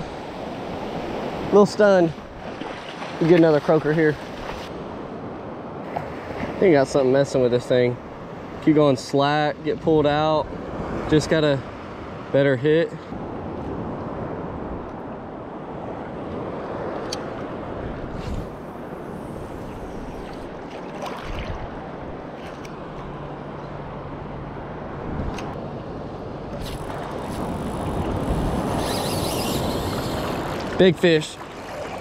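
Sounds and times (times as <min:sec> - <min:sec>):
shallow surf water: 0:00.0 - 0:32.0
wind on microphone: 0:13.1 - 0:22.7, 0:24.8 - 0:25.6, 0:26.5 - 0:30.8.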